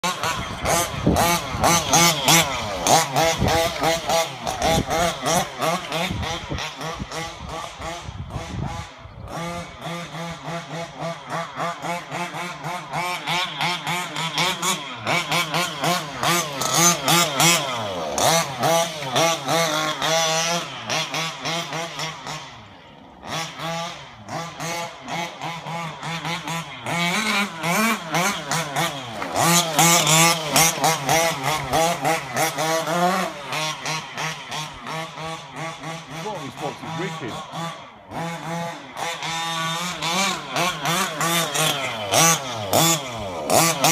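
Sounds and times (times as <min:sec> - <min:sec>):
two-stroke engine revving: 0:00.0 - 0:43.9.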